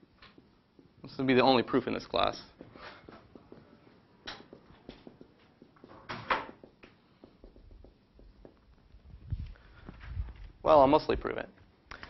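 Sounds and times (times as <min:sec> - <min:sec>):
marker writing on whiteboard: 0:01.8 - 0:09.0.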